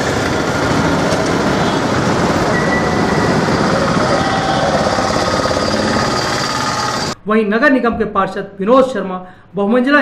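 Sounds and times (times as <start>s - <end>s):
loud mechanical rattle: 0.0s - 7.2s.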